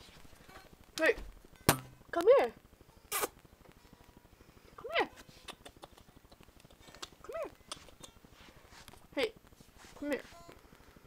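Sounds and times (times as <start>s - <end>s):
woman calling a pet: 4.8s - 5.2s, 7.2s - 7.6s.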